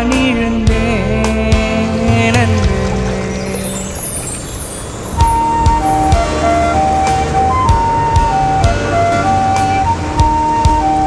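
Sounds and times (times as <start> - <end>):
melody of long held notes: 0.1 - 11.0
low drum beats: 0.2 - 3.8, 5.2 - 9.1
falling high shimmer: 2.7 - 6.8.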